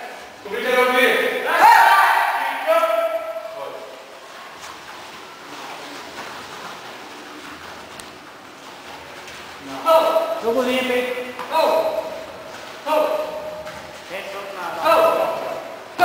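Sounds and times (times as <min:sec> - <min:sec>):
faint hall noise: 0:00.0 - 0:16.0
loud voice calling out: 0:11.4 - 0:12.2, 0:12.8 - 0:13.6, 0:14.7 - 0:16.0.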